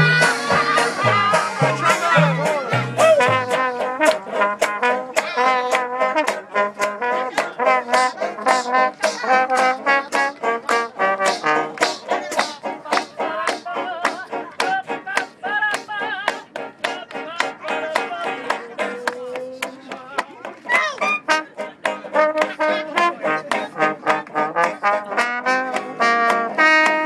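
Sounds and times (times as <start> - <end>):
trombones playing jazz tune: 0.0 - 15.0, 20.7 - 27.0
banjo strumming: 0.0 - 27.0.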